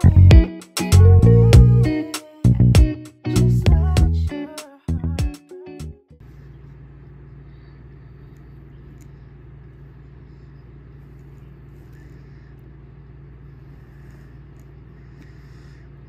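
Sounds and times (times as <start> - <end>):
low background hum: 1.0 - 16.0.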